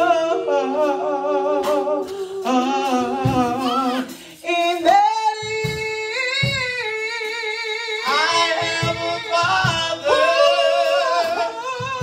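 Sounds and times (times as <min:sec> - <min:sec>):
woman singing gospel solo: 0:00.0 - 0:12.0.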